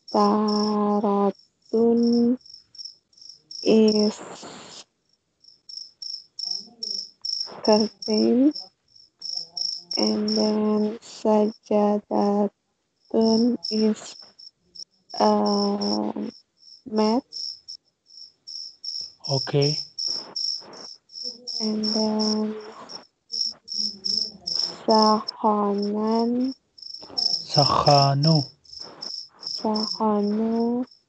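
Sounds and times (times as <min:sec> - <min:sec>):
cricket chirping: 0:00.0 - 0:04.2, 0:05.1 - 0:10.8, 0:13.0 - 0:31.0
brief voice sound: 0:19.3 - 0:19.8, 0:27.5 - 0:28.4
high-pitched chirping: 0:27.0 - 0:30.4.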